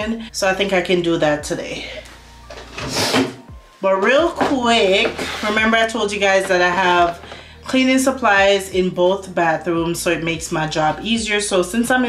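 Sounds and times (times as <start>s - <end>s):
vanity drawer scraping open: 2.4s - 3.5s, 4.7s - 5.8s.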